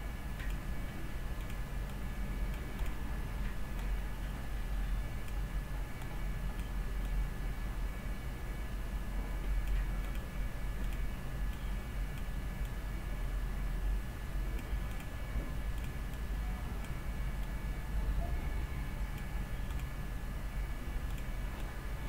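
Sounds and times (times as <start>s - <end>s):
faint steady whine: 0.0s - 22.0s
low electrical hum: 0.0s - 22.0s
computer mouse clicks: 6.0s - 7.2s, 9.6s - 12.8s, 14.6s - 15.2s, 15.8s - 16.2s, 19.1s - 20.0s, 21.1s - 21.8s.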